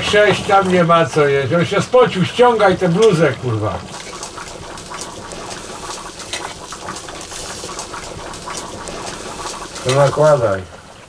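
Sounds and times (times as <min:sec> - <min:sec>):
food sizzling and bubbling in a pan: 0:00.0 - 0:11.0.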